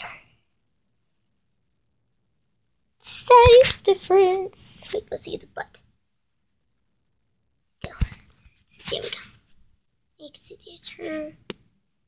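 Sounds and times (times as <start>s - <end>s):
person whispering: 10.2s - 11.4s.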